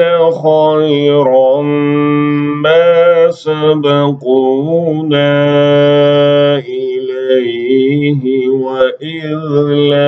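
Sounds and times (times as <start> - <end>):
man reciting in melodic chant: 0.0 - 10.0.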